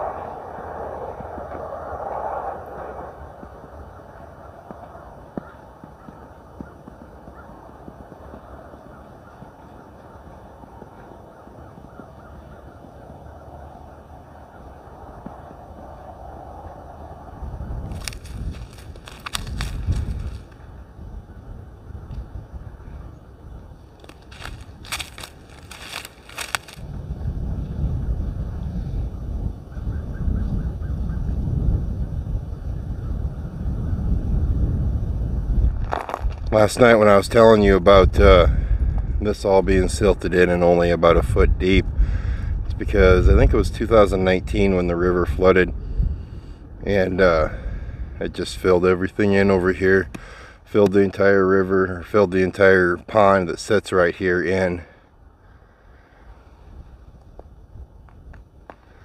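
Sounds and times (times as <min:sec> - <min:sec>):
wind rumble on microphone: 0:00.0 - 0:59.0
sharp crackling clicks: 0:17.9 - 0:20.6, 0:24.0 - 0:26.8, 0:35.8 - 0:36.6.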